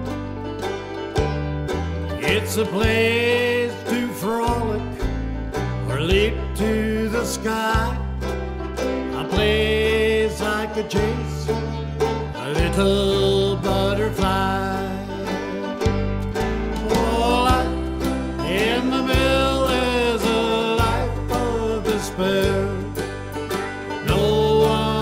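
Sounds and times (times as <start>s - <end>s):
banjo picking: 0.0s - 25.0s
bass notes: 0.0s - 25.0s
sliding melody line: 0.0s - 25.0s.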